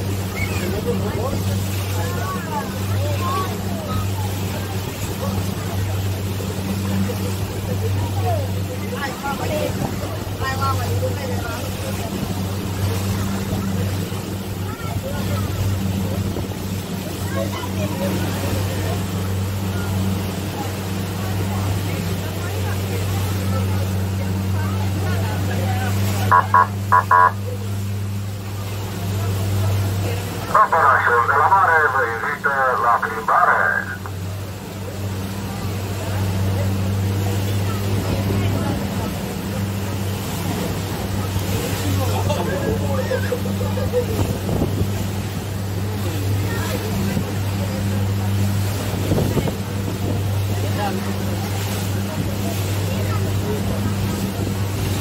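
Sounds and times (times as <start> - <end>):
boat engine droning: 0.0 - 55.0
water rushing in wake: 0.0 - 55.0.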